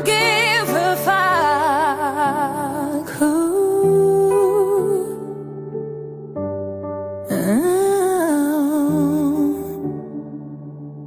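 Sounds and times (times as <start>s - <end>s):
woman singing with vibrato: 0.0s - 5.4s.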